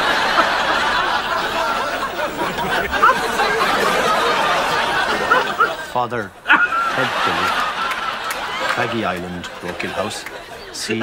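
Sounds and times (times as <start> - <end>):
man and woman laughing: 0.0 - 10.5.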